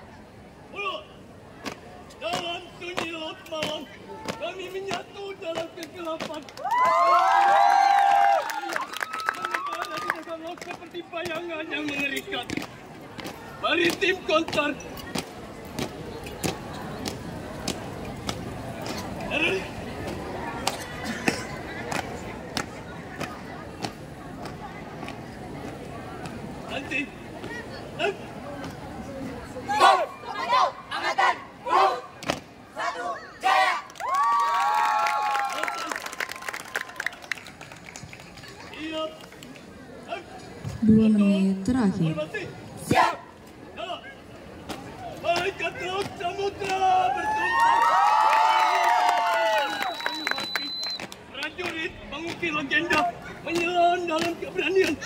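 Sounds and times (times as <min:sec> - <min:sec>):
spectator voices and chatter: 0:08.4 - 0:34.1, 0:35.5 - 0:48.2, 0:49.4 - 0:55.0.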